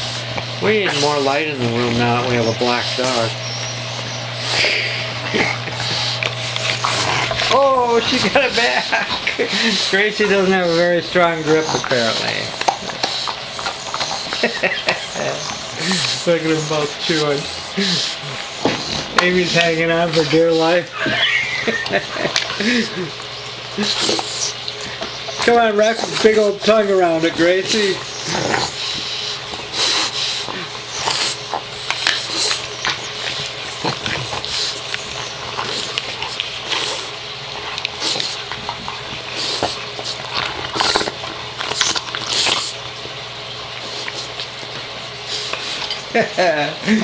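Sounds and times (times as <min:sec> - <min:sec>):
dog grunting: 0:00.0 - 0:47.0
dog whining: 0:00.6 - 0:37.1.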